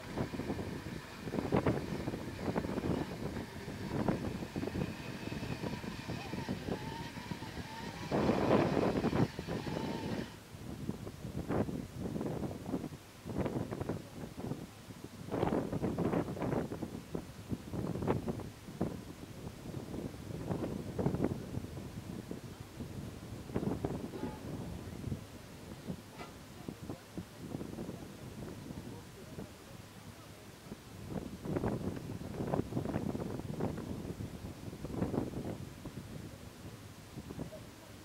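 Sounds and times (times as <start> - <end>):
faint high whine: 0.0 - 10.4
off-road vehicle engine revving: 0.0 - 10.4.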